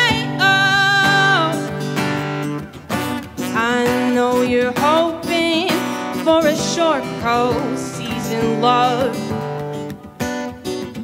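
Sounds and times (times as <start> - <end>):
woman singing: 0.0 - 2.2, 3.4 - 9.9
acoustic guitar strummed: 0.0 - 11.0.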